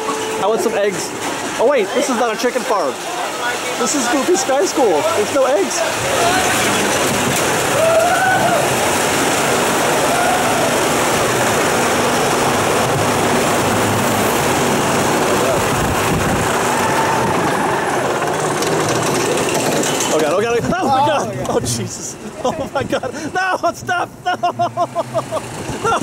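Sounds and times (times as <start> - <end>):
roller coaster lift mechanical noise: 0.0 - 26.0.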